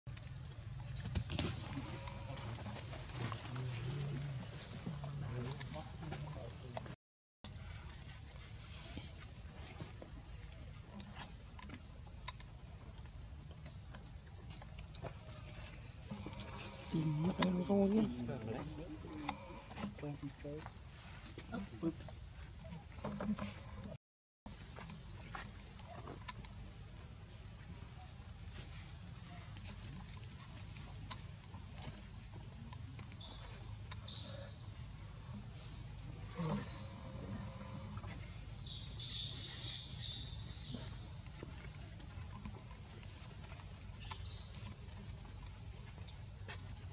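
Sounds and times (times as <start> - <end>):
monkey chewing fruit: 0.1 - 46.9.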